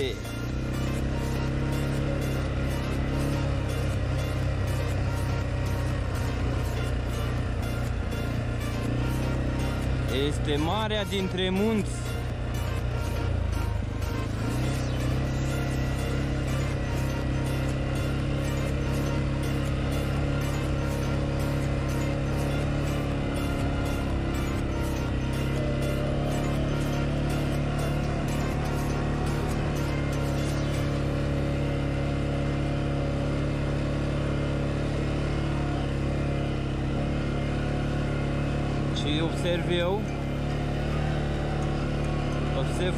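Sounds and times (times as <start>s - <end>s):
music with steady beat: 0.0s - 32.2s
atv engine running: 0.0s - 42.9s.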